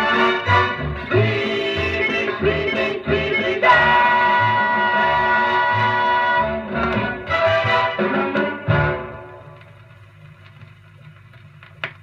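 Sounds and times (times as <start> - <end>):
record surface hiss: 0.0 - 12.0
faint needle clicks in run-out groove: 9.5 - 12.0.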